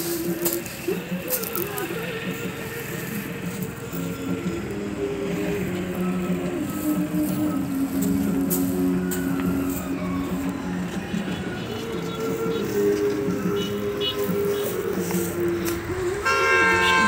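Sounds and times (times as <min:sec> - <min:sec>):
melodic background music: 0:00.0 - 0:17.0.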